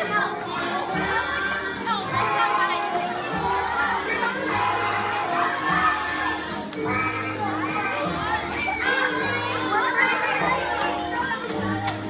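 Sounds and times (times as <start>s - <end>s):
background music: 0.0s - 12.0s
children chattering and calling out: 0.0s - 12.0s.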